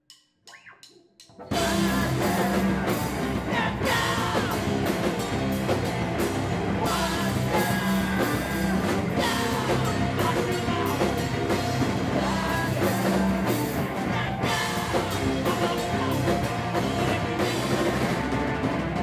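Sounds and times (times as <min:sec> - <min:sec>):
rock band playing: 0:01.4 - 0:19.0.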